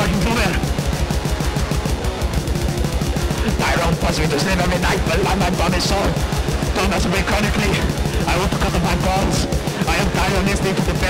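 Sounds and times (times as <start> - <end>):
distorted electric guitar: 0.0 - 11.0
fast kick drum beat: 0.0 - 11.0.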